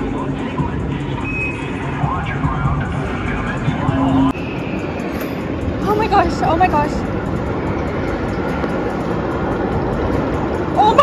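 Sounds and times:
music: 0:00.0 - 0:11.0
ride low rumble: 0:00.0 - 0:11.0.

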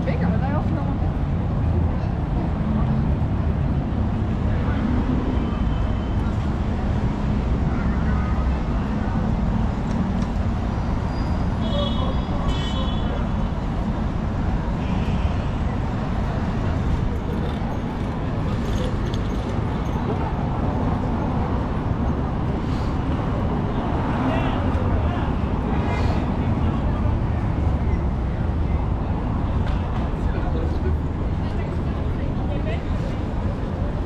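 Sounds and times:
passers-by talking: 0:00.0 - 0:10.4, 0:15.5 - 0:34.0
road traffic rumble: 0:00.0 - 0:34.0.

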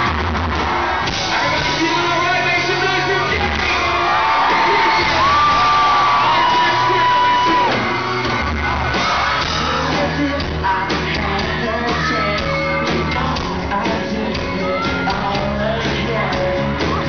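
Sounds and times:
live pop-rock band playing: 0:00.0 - 0:17.0
person singing into microphone: 0:09.6 - 0:17.0.

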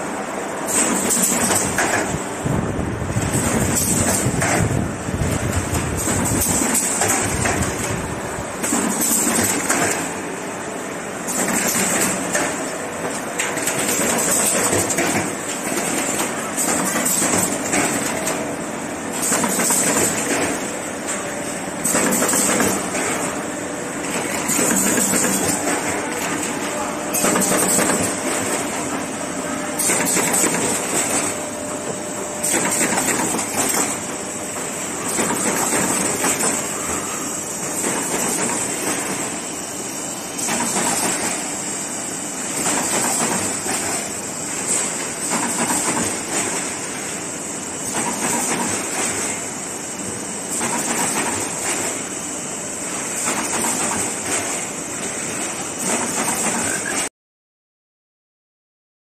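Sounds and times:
machinery running with hiss: 0:00.0 - 0:57.1.

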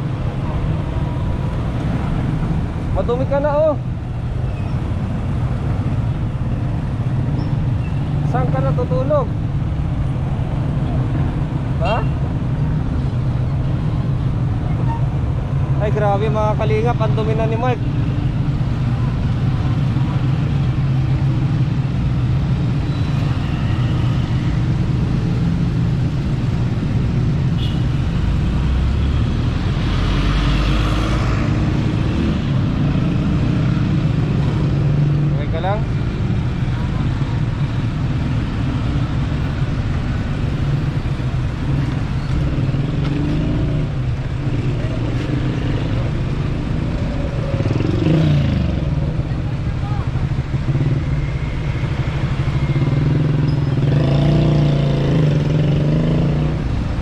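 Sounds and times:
steady vehicle engine hum: 0:00.0 - 0:57.0
vehicle passing by: 0:28.5 - 0:35.8, 0:50.6 - 0:57.0.

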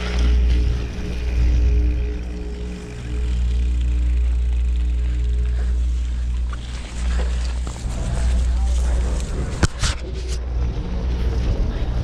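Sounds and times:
steady held tones: 0:00.0 - 0:09.7.

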